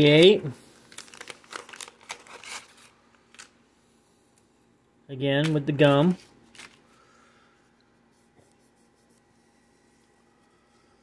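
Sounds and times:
wax paper wrapper crinkling: 0:00.0 - 0:03.6, 0:05.4 - 0:07.1.

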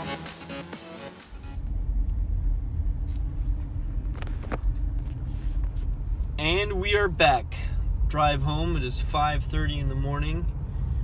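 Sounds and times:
background music: 0:00.0 - 0:01.7
car road and engine noise: 0:00.0 - 0:11.0.

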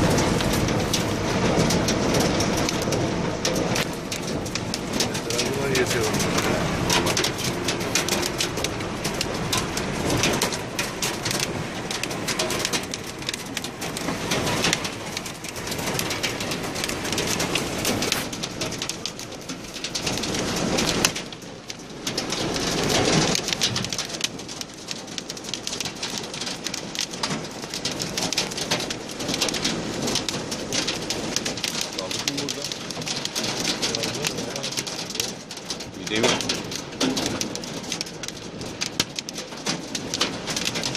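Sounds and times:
hail and rain drumming on roof: 0:00.0 - 0:40.9.

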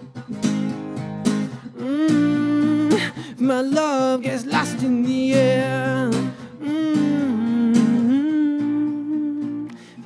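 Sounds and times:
acoustic guitar: 0:00.0 - 0:10.0
man humming: 0:01.6 - 0:03.5, 0:05.7 - 0:09.8.

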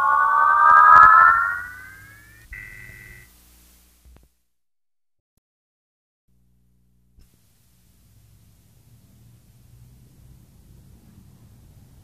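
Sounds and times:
short high steady tone: 0:00.0 - 0:03.2.

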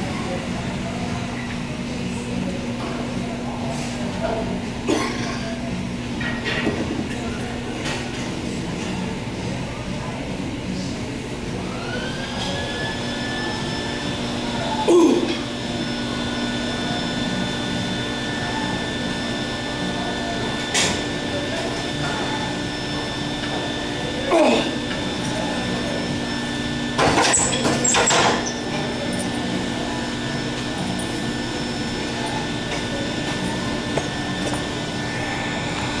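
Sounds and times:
fan hum and hiss: 0:00.0 - 0:36.0.

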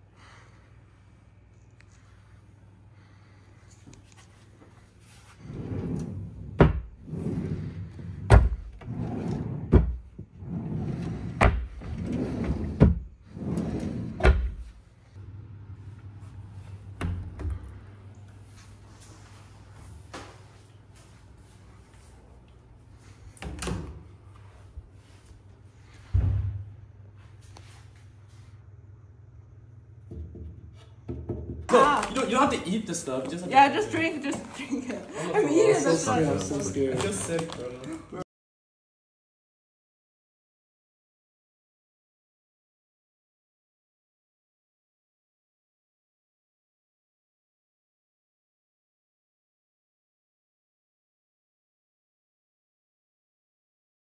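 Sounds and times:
drawers sliding and knocking shut: 0:05.5 - 0:14.7
steady low hum: 0:10.6 - 0:31.1
cabinet doors knocking: 0:30.1 - 0:31.7.

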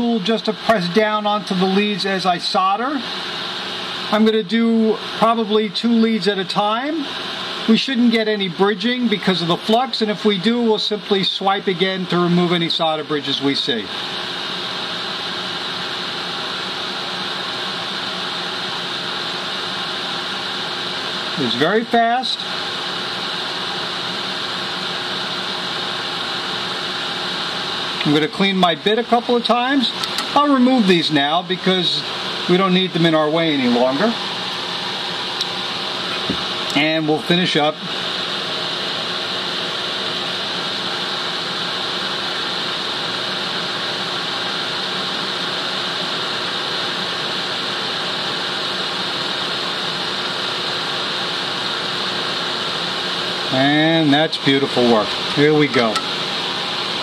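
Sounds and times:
extractor fan hiss: 0:00.0 - 0:57.0.

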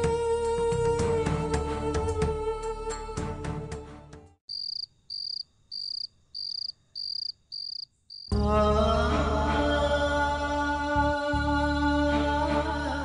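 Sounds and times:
music with singing: 0:00.0 - 0:04.3, 0:08.3 - 0:13.0
background music: 0:00.0 - 0:04.4, 0:08.3 - 0:13.0
cricket chirping: 0:04.5 - 0:08.3.

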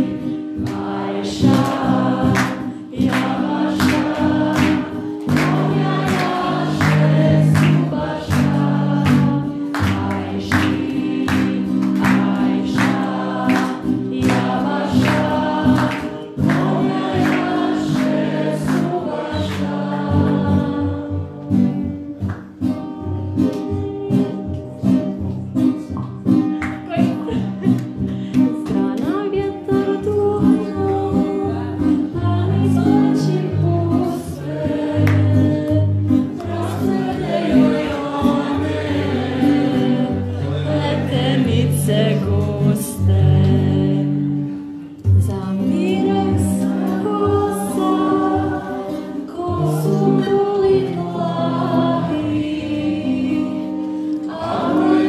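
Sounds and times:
group of people singing: 0:00.0 - 0:25.9, 0:27.0 - 0:55.0
strummed guitar: 0:00.0 - 0:55.0.

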